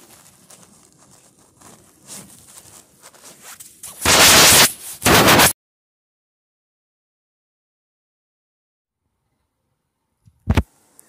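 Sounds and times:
cloth and hand handling noise: 0.0 - 5.0.

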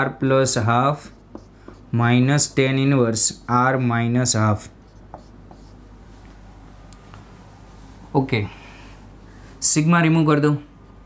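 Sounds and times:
low steady hum: 0.0 - 11.0
marker pen writing on whiteboard: 0.8 - 5.9.

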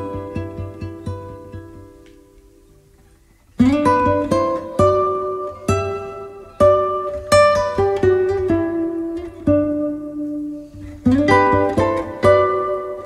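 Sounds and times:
acoustic guitar notes picked: 0.0 - 13.0.

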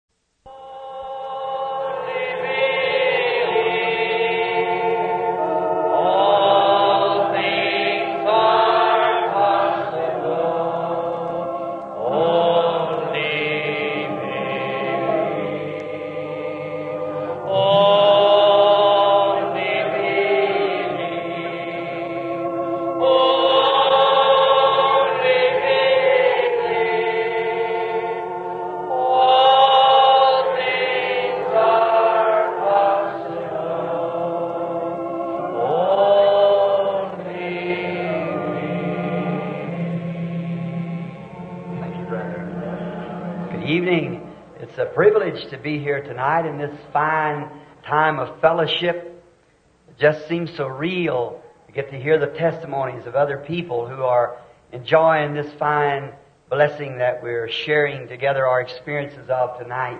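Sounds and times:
group singing a slow hymn: 0.5 - 48.6.

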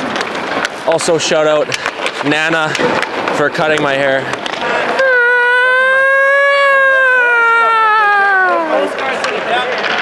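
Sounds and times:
person imitating siren: 5.0 - 8.9.

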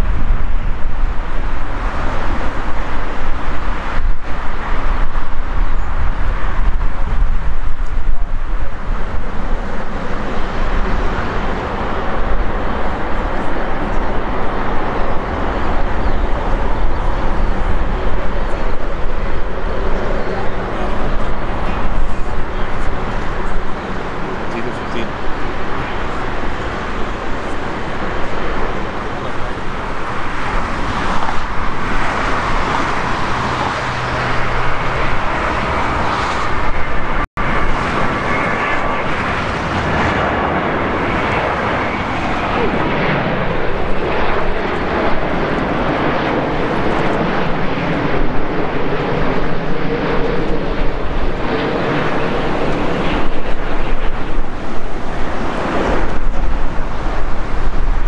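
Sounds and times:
jet airliner engines: 0.0 - 58.0
road traffic: 0.0 - 58.0
wind gusts on microphone: 0.0 - 58.0.

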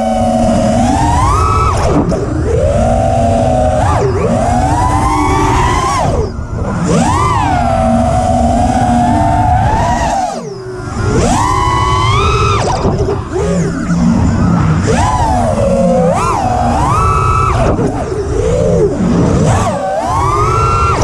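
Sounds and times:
drone motors and propellers whining: 0.0 - 21.0.

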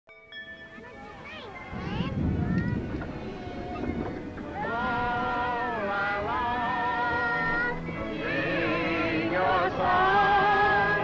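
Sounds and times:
music: 0.1 - 11.0.

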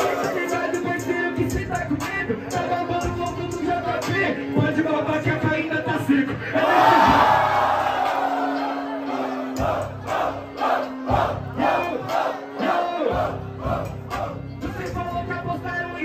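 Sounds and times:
hip-hop beat: 0.0 - 16.0
crowd cheering and shouting: 6.6 - 14.4.

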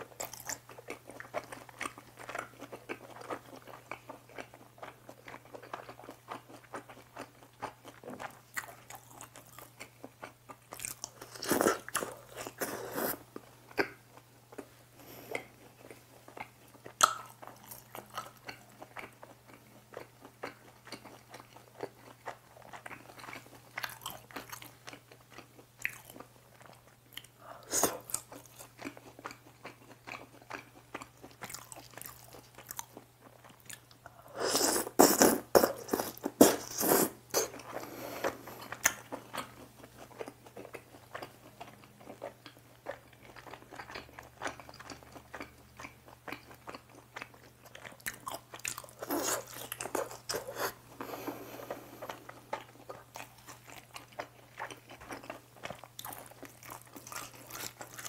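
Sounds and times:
chewing and mouth sounds: 0.0 - 58.0.

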